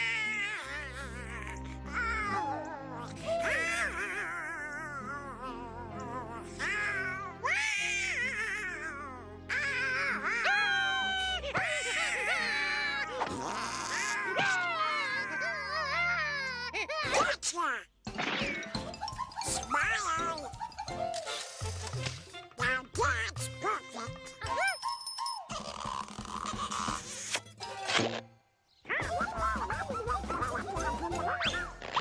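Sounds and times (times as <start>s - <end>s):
background music: 0.0s - 32.0s
cartoon duck quacking voice: 22.6s - 24.2s.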